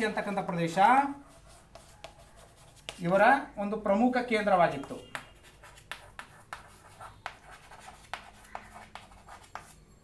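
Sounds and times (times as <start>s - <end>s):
chalk scratching on chalkboard: 0.7s - 3.3s, 4.7s - 9.8s
sharp chalk tap: 1.7s - 3.2s, 4.8s - 9.8s.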